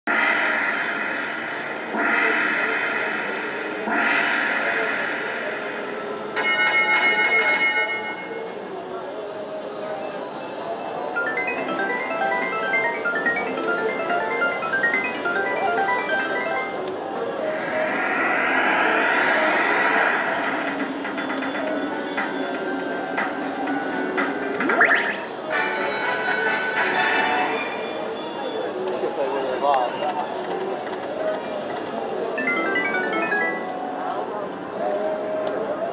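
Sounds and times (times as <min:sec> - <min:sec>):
slot machine ringing tone: 0:11.1 - 0:17.0, 0:24.1 - 0:27.6, 0:32.4 - 0:34.1.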